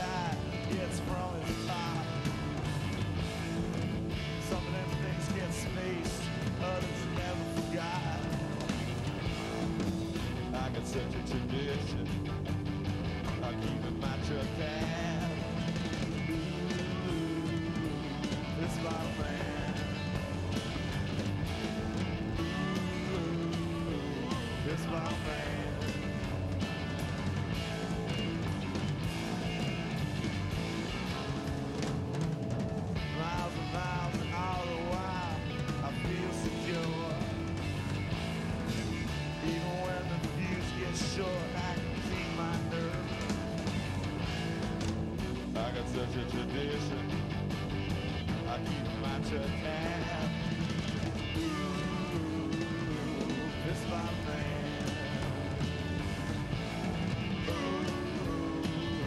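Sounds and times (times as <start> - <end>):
man singing: 0.0 - 2.6, 4.2 - 12.2, 13.2 - 20.6, 21.6 - 26.4, 33.0 - 37.7, 39.2 - 43.4, 45.5 - 47.2, 48.3 - 55.4, 57.3 - 59.0
rock band playing: 0.0 - 59.0.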